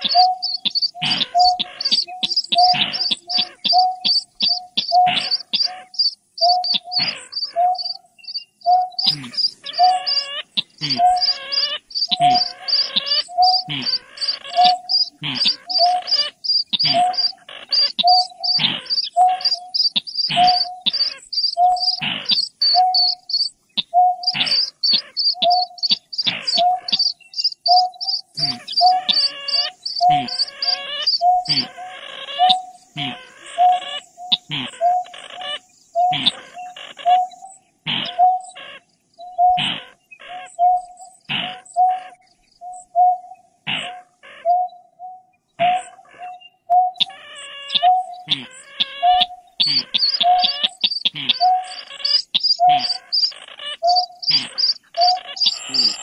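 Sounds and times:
short bird notes: 0.0s - 38.6s, 44.4s - 56.0s
harsh grating bird calls: 0.0s - 56.0s
rapid high bird chirps: 0.0s - 56.0s.

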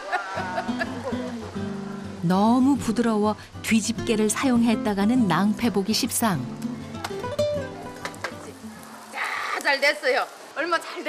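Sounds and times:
music: 0.4s - 8.7s
woman speaking: 2.2s - 6.5s, 9.6s - 11.0s.

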